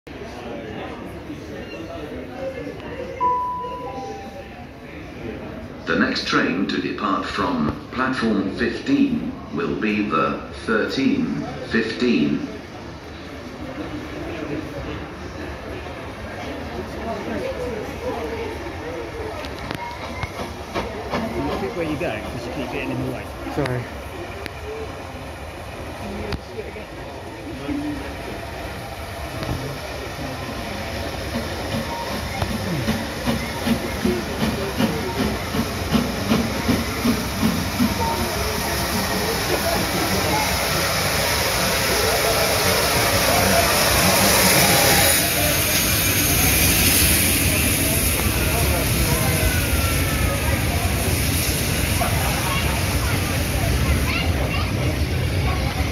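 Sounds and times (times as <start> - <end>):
loud hiss of steam: 28.9 - 55.6
steam locomotive exhaust beats: 30.8 - 55.9.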